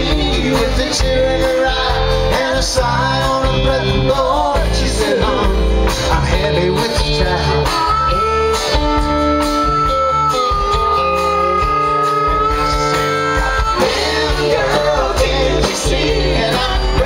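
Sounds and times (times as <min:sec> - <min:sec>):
harmonica sustained notes: 0:00.0 - 0:17.0
rock band playing: 0:00.0 - 0:17.0.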